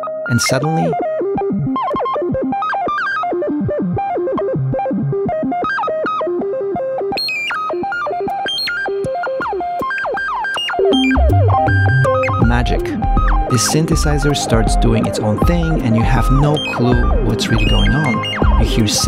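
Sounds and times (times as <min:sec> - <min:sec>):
synthesizer notes stepping and gliding: 0:00.0 - 0:19.0
deep synth bass: 0:11.1 - 0:19.0.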